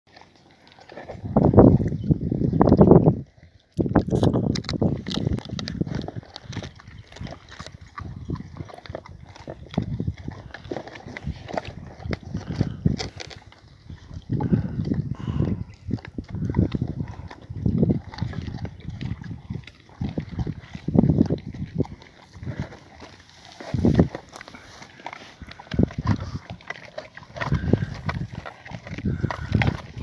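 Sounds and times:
dogs gnawing bones: 0.1s - 30.0s
teeth clicking on bone: 0.1s - 30.0s.

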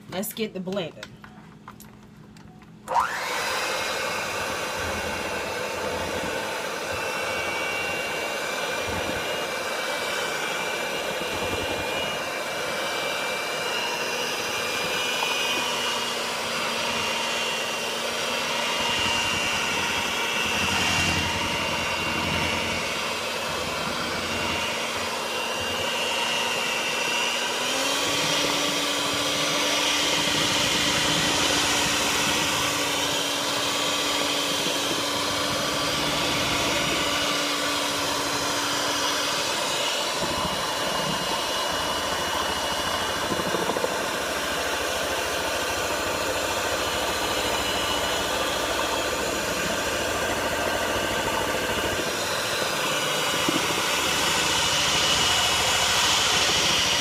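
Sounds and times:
electric hand mixer running: 2.9s - 57.0s.

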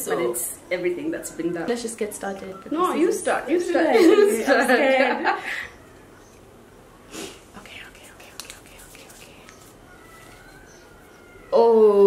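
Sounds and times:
person whispering: 7.5s - 9.6s
small clicks of paper slip: 8.2s - 10.4s
paper rustling: 8.2s - 10.7s.

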